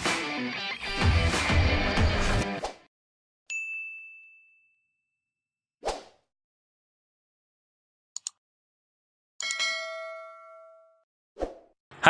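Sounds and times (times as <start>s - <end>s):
notification bell ding: 3.5s - 4.9s, 9.4s - 11.0s.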